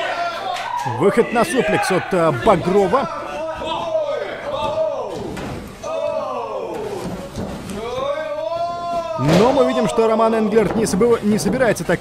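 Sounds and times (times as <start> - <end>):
bodies knocking on wrestling ring: 6.8 - 7.8.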